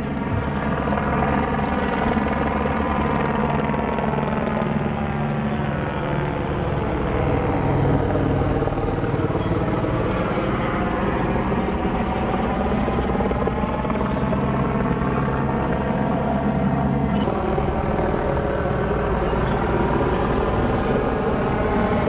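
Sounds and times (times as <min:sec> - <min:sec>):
helicopter rotor and engine drone: 0:00.0 - 0:22.0.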